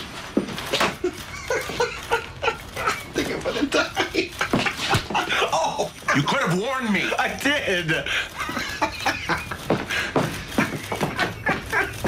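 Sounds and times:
man laughing hard: 0:00.7 - 0:06.6, 0:08.0 - 0:12.0.

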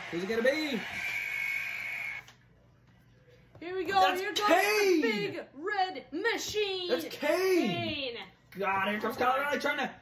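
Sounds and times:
thin high steady whine: 0:00.0 - 0:02.4.

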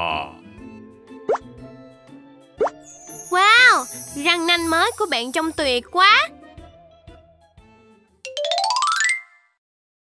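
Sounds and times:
soft background music: 0:00.0 - 0:09.1
cartoon pop blips: 0:01.3 - 0:01.5.

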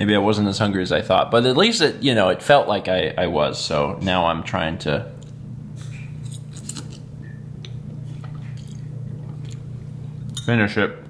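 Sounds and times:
steady low hum: 0:00.0 - 0:11.0
man chewing spaghetti: 0:05.2 - 0:10.3.

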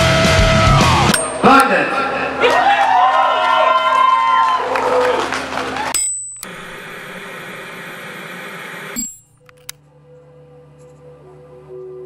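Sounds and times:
high whine: 0:06.0 - 0:09.7
low hum: 0:06.0 - 0:09.8
click: 0:06.4 - 0:06.8, 0:09.0 - 0:09.8
television static hiss: 0:06.5 - 0:09.0.

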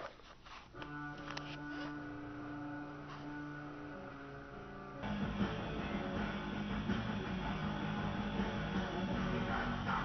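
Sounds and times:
black metal music over speakers: 0:02.4 - 0:10.0.

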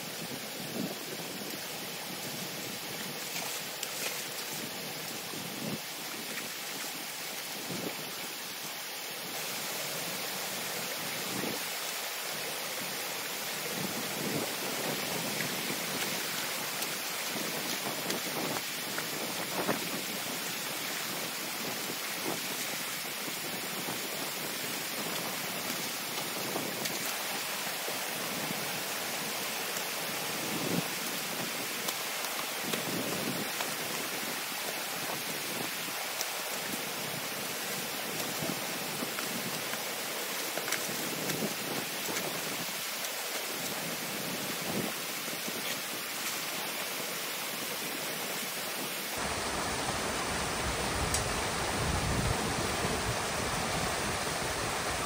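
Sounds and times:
water rushing through dam: 0:00.0 - 0:55.0
knocks and splashes of sticks: 0:03.1 - 0:06.9.

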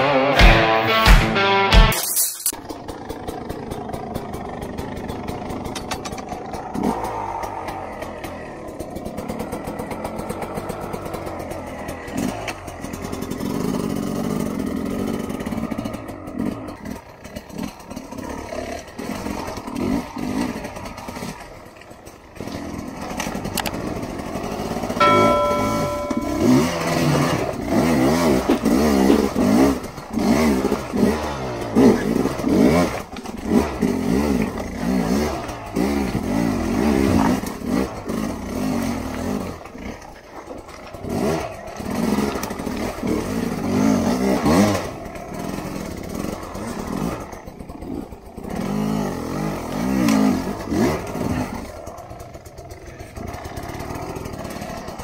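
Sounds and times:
brief steady tone: 0:25.0 - 0:27.3
dirt bike engine revving: 0:27.0 - 0:40.0, 0:41.0 - 0:55.0.

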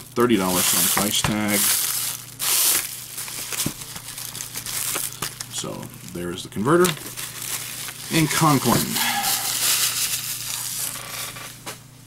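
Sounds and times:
plastic packaging crinkling: 0:00.0 - 0:11.6.

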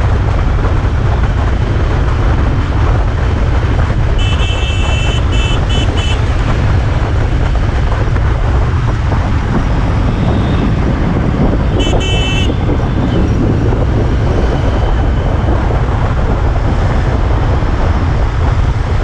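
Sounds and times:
road noise: 0:00.0 - 0:19.0
wind rush: 0:00.0 - 0:19.0
vehicle horn honk: 0:04.2 - 0:06.3, 0:11.7 - 0:12.6.

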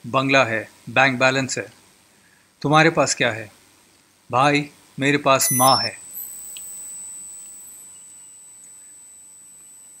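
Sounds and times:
faint hiss: 0:00.0 - 0:09.1
high-pitched electronic whine: 0:05.4 - 0:10.0.

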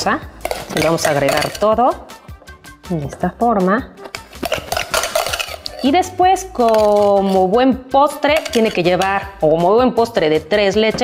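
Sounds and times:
spatula clinking on glass: 0:00.4 - 0:01.8, 0:04.2 - 0:06.0, 0:06.6 - 0:07.2, 0:08.2 - 0:09.3
spatula scraping glass bowl: 0:00.4 - 0:02.5, 0:04.0 - 0:07.5, 0:08.1 - 0:09.4.

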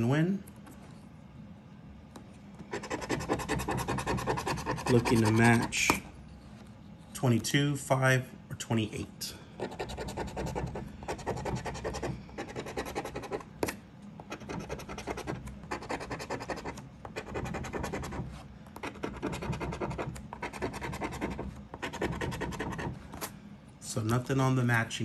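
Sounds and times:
scratching lottery ticket coating: 0:02.8 - 0:05.8.

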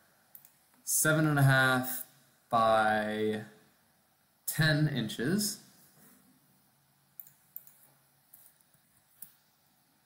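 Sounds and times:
computer mouse clicks: 0:00.3 - 0:00.8, 0:07.2 - 0:09.4.

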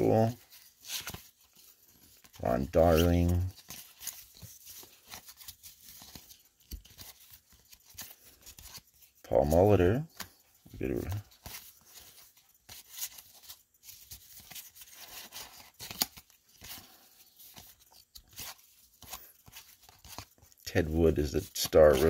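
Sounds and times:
cards flicking and sliding: 0:10.2 - 0:16.9, 0:17.5 - 0:20.6.

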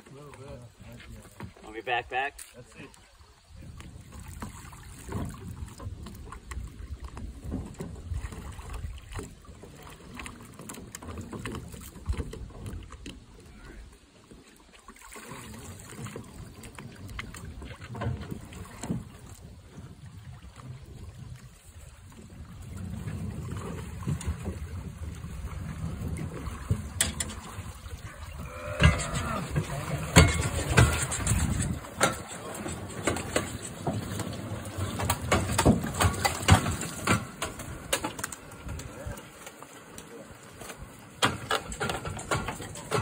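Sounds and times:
water sloshing: 0:00.0 - 0:43.0
wind rumble on microphone: 0:16.4 - 0:37.9.

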